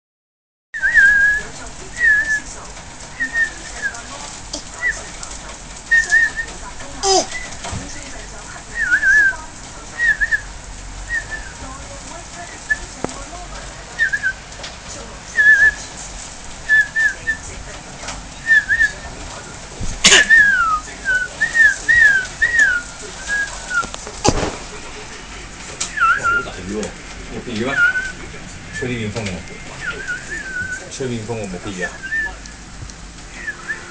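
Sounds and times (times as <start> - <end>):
person whistling warbling notes: 33.3 - 33.9.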